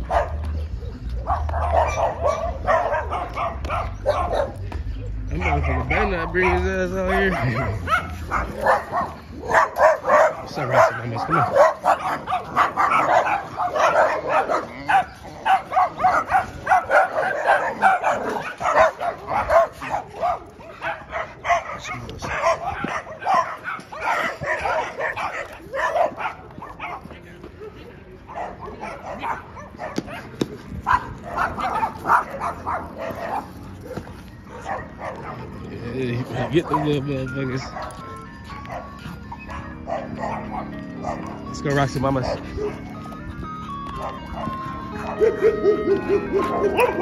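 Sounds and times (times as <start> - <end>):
dog barking: 0.0 - 41.5, 42.1 - 43.1, 44.0 - 47.0.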